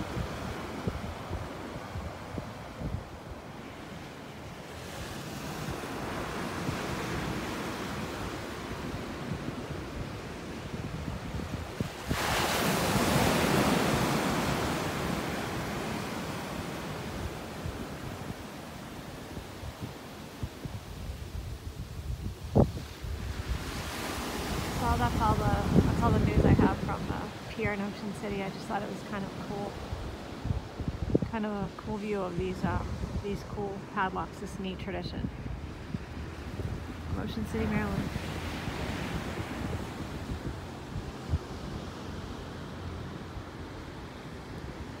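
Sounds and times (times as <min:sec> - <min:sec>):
wind buffeting microphone: 0:00.0 - 0:04.0, 0:04.7 - 0:34.3, 0:35.0 - 0:45.0
ocean surf breaking: 0:00.0 - 0:45.0.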